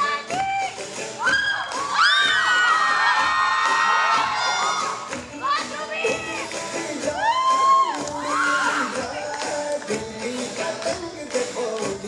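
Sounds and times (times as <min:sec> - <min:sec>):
dance music: 0:00.0 - 0:12.0
crowd cheering: 0:01.2 - 0:05.2.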